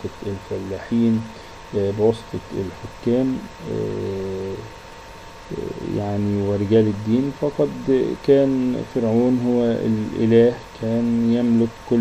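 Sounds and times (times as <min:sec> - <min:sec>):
man hesitation sound: 0:00.0 - 0:04.7, 0:05.5 - 0:12.0
faint room hum: 0:00.0 - 0:12.0.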